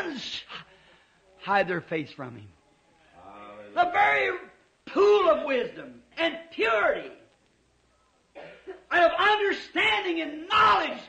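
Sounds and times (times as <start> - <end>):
man speaking: 1.4 - 2.6
short cough: 8.4 - 8.8.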